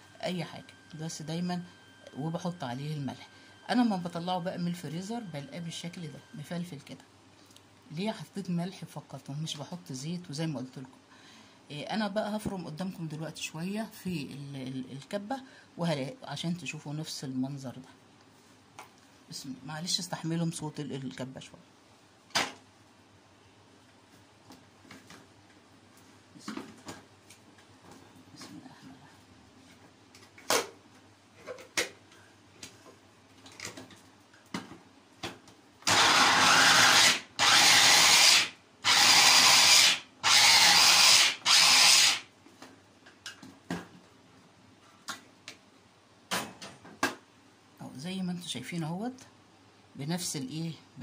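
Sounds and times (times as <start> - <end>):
electric food chopper whirring: 35.8 - 42.2.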